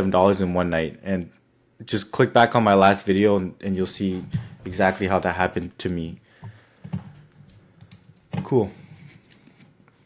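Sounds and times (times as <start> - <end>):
man speaking: 0.0 - 6.2, 8.4 - 9.0
computer keys clicking: 7.5 - 8.5.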